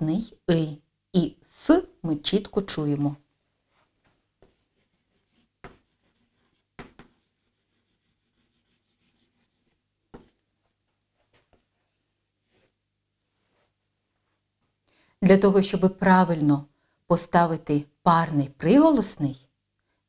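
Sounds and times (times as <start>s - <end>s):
chalk tapping on blackboard: 4.4s - 10.4s.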